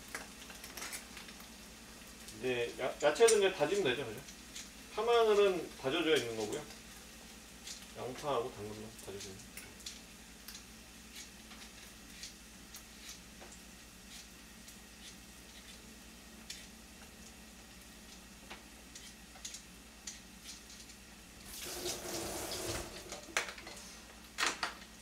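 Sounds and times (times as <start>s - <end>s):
egg crackling in a pan: 0.0s - 25.0s
tap water running: 21.4s - 23.8s.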